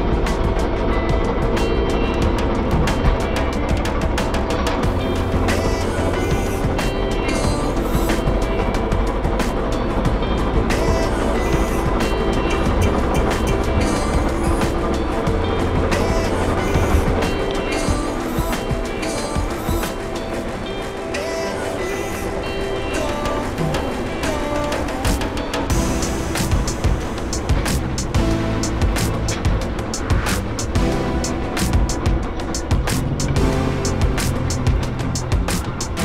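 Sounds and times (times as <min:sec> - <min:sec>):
background music: 0:00.0 - 0:36.0
crawler carrier engine running: 0:00.0 - 0:36.0.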